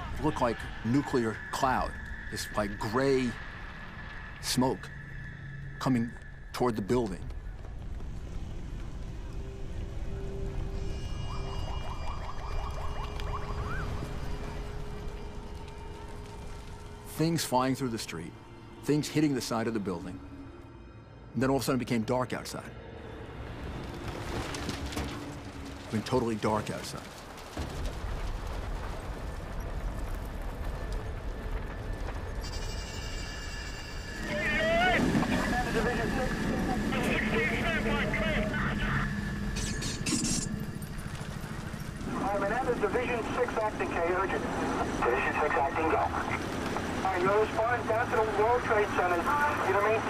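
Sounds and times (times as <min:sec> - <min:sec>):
low rushing debris cloud: 0:23.5 - 0:32.5, 0:41.0 - 0:50.0.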